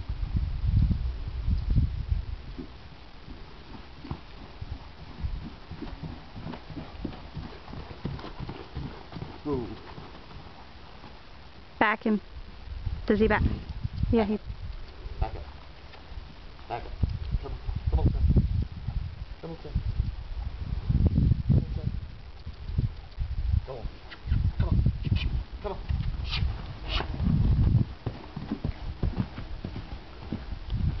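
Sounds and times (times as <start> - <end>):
horse hoofbeats on grass and dirt: 2.4 - 11.2, 24.6 - 31.0.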